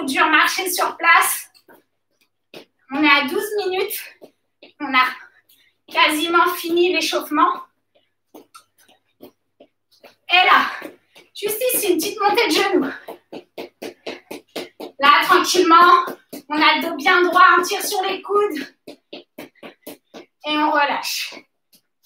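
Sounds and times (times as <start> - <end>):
shoes tapping on floor: 0.0 - 22.0
person speaking: 2.9 - 5.3, 5.9 - 7.7, 10.1 - 13.4, 14.1 - 18.8.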